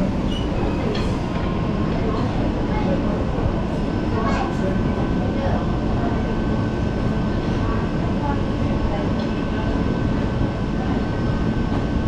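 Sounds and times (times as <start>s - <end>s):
train rumbling past: 0.0s - 12.0s.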